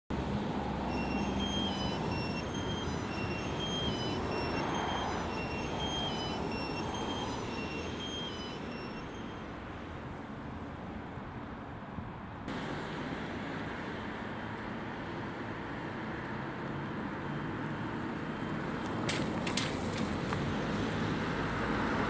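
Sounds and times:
traffic rumble: 0.1s - 22.0s
two-tone emergency siren: 0.8s - 9.9s.

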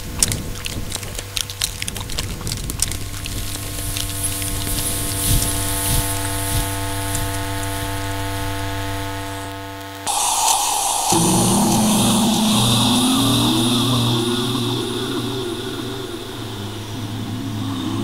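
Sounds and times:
crackling clicks: 0.2s - 7.4s
droning hum of held tones: 3.4s - 18.0s
high hiss: 3.7s - 8.6s, 10.1s - 18.0s.

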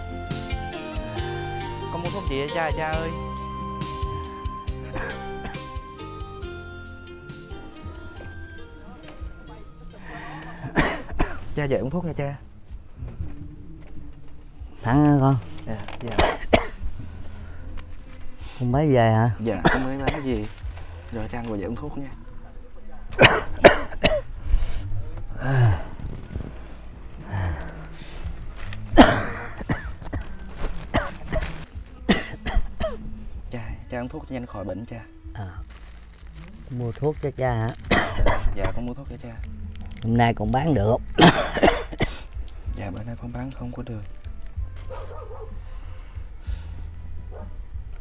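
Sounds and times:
soft background music: 0.0s - 48.0s
man coughing: 4.8s - 5.7s, 10.4s - 11.5s, 16.1s - 16.8s, 19.6s - 20.4s, 23.1s - 24.3s, 29.0s - 33.0s, 37.8s - 38.8s, 41.2s - 42.2s.

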